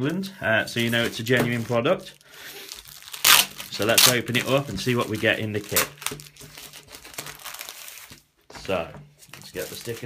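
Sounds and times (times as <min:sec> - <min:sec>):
plastic bag crinkling: 0:00.7 - 0:10.0.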